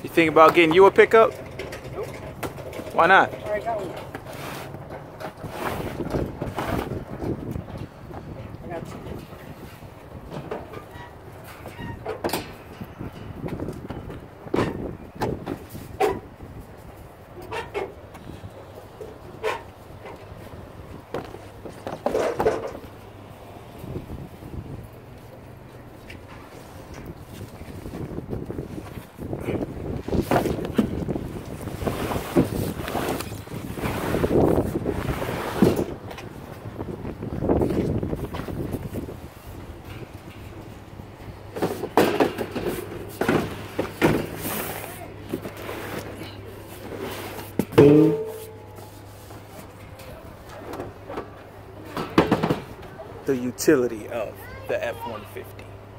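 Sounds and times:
boxes scraping and knocking: 0.1 - 8.0, 17.4 - 23.2, 26.0 - 36.7, 41.4 - 49.8
wind buffeting microphone: 4.8 - 17.4, 22.8 - 25.2, 25.8 - 41.6.

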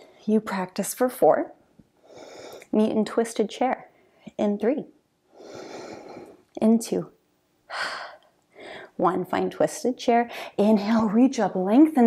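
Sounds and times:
woman breathing: 2.0 - 2.7, 5.3 - 6.5, 7.7 - 9.0, 10.3 - 10.6.

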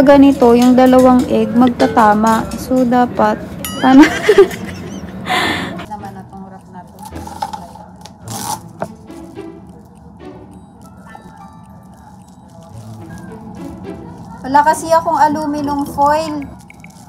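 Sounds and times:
quiet background music: 0.0 - 17.0
plastic wrap crinkling: 5.8 - 17.0.

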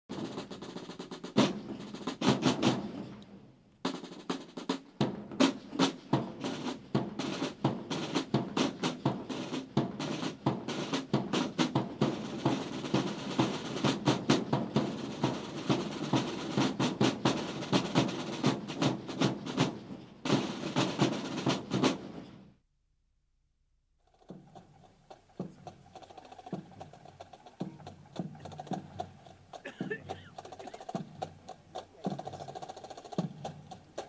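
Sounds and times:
snare drums marching cadence: 0.1 - 22.4, 24.1 - 34.0.

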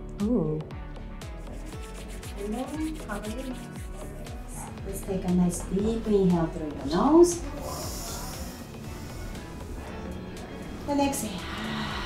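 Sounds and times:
soft background music: 0.0 - 12.0
palms rubbing together: 1.2 - 4.8.

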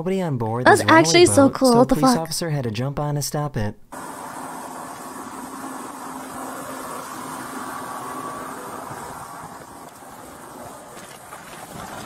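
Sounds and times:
faint engine hum: 4.0 - 11.6.

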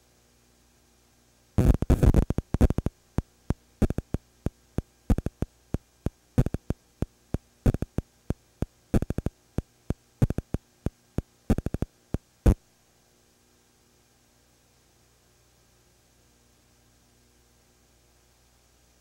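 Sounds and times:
faint mains hum: 0.0 - 19.0
sharp clicks: 1.6 - 4.2, 4.8 - 5.5, 6.4 - 8.0, 8.6 - 12.2.

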